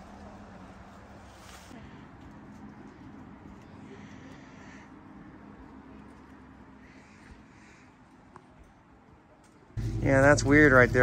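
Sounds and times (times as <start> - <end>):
low steady hum: 9.8 - 11.0.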